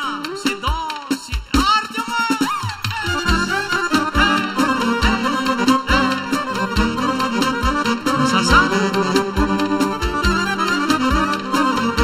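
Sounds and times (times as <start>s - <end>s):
drum beat thumping: 0.7s - 12.0s
folk band playing dance tune: 0.7s - 12.0s
saxophone: 2.9s - 12.0s.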